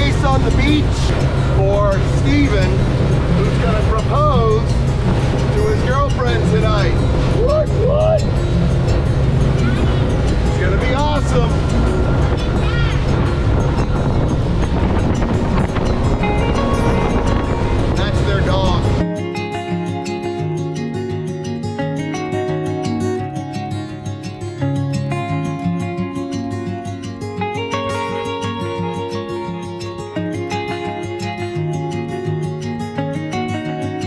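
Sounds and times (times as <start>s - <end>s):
outboard motor running: 0.0s - 19.0s
wind and spray noise: 0.0s - 19.0s
music: 0.0s - 34.0s.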